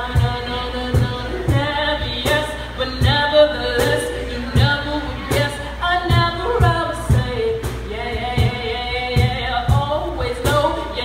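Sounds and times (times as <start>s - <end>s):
music with steady beat: 0.0s - 11.0s
woman singing: 0.0s - 11.0s.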